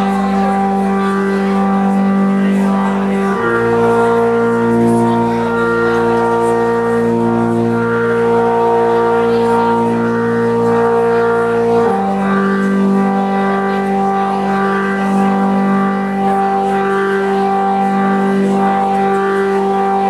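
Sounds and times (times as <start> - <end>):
organ-like keyboard chords: 0.0 - 20.0.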